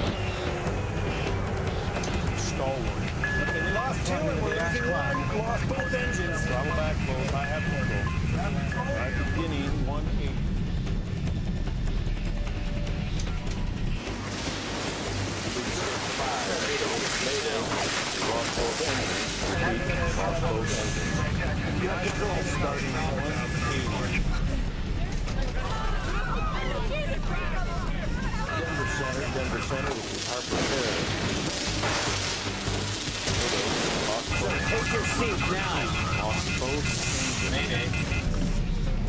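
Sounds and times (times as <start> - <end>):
steady rushing noise: 0.0 - 39.0
muffled voices: 1.2 - 10.4, 15.4 - 31.2, 33.9 - 38.7.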